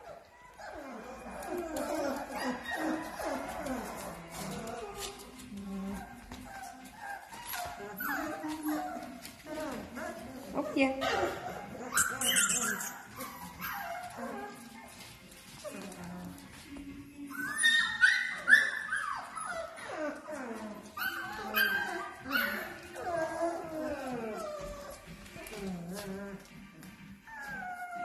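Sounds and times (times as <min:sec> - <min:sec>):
puppies high yelps: 0:00.0 - 0:05.2, 0:11.1 - 0:15.0, 0:17.4 - 0:20.3, 0:20.9 - 0:25.0
puppies whimpering and yipping: 0:00.0 - 0:28.0.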